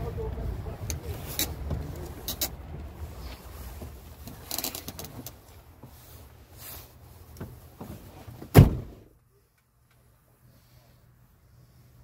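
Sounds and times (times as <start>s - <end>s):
low rumble in truck cab: 0.0s - 12.0s
sharp clicks and rustles: 0.8s - 6.0s.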